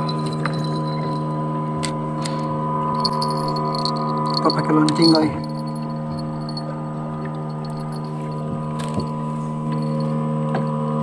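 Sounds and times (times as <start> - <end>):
small boat engine droning: 0.0 - 11.0.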